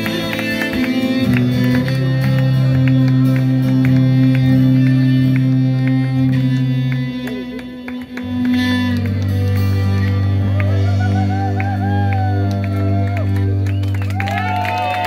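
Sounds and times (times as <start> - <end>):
folk band playing: 0.0 - 15.0.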